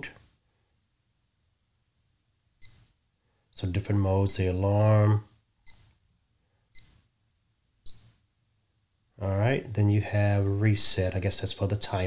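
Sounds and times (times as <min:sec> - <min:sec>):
digital watch beeping: 0:02.6 - 0:02.9, 0:04.2 - 0:04.4, 0:05.6 - 0:05.9, 0:06.7 - 0:07.0, 0:07.8 - 0:08.2.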